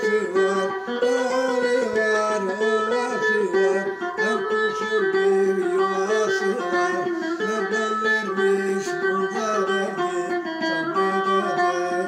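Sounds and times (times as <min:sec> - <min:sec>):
man singing folk song: 0:00.0 - 0:12.0
plucked lute strings: 0:00.0 - 0:12.0.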